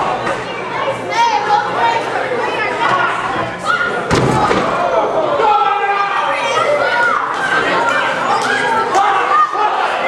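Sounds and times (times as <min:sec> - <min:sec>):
crowd voices: 0:00.0 - 0:10.0
body slamming onto mat: 0:04.1 - 0:04.7.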